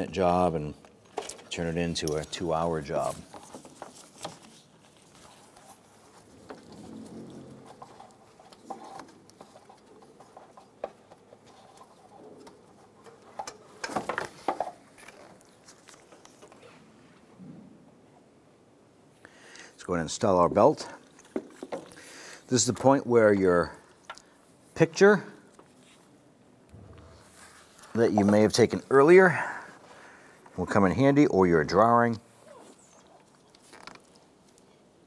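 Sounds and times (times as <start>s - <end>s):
hands working among engine parts: 0.8s - 16.7s
rustling and scraping: 0.9s - 17.7s, 25.4s - 30.8s.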